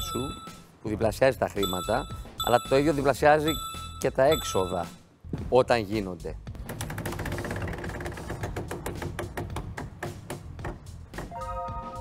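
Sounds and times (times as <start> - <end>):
background music: 0.0 - 12.0
prize wheel clicking: 1.7 - 4.8.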